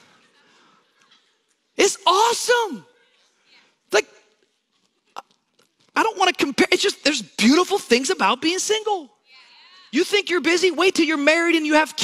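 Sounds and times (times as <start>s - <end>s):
man speaking into a microphone: 1.8s - 2.9s, 3.9s - 4.3s, 5.9s - 9.2s, 9.9s - 12.0s.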